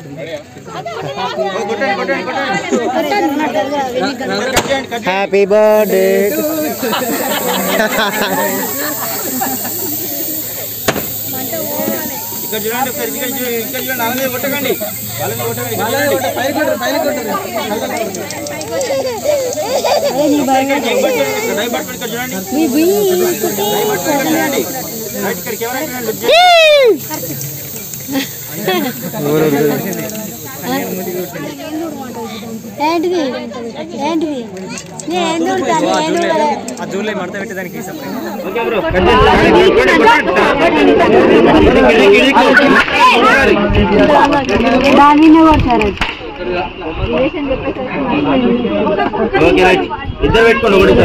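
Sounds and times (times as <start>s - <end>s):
crowd voices: 0.0s - 51.0s
sharp pop: 4.5s - 4.9s, 10.8s - 11.2s, 45.9s - 46.3s
aerosol cans hissing: 5.7s - 35.1s, 36.7s - 39.0s.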